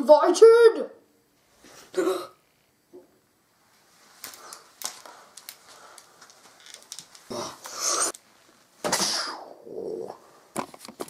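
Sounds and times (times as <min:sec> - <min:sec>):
child grunting: 0:02.0 - 0:02.4, 0:07.3 - 0:08.1
plastic toy clicks and rustling: 0:04.8 - 0:07.3.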